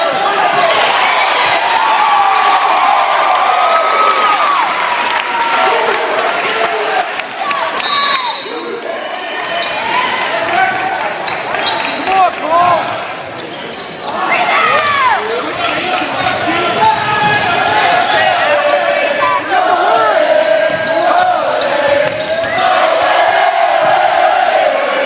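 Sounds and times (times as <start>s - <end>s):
spectators shouting and cheering: 0.0s - 25.0s.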